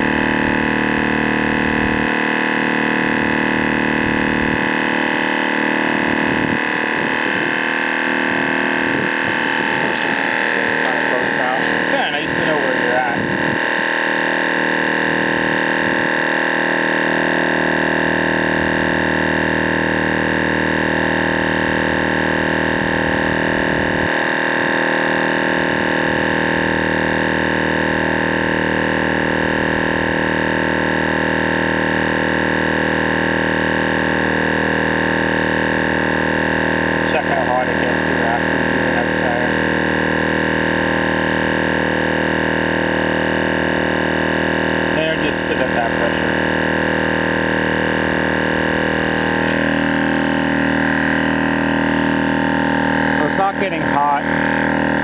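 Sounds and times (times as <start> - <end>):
tire inflator humming: 0.0 - 55.0.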